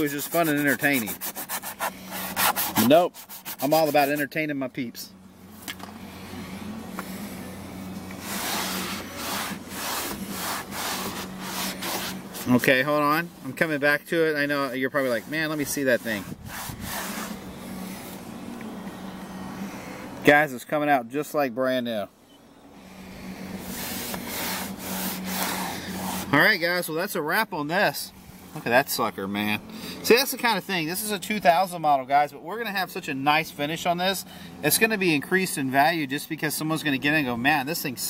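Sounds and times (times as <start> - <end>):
towel rubbing vinyl panel: 0.0 - 4.4, 5.5 - 20.2, 22.8 - 26.8
steady low hum: 0.0 - 36.0.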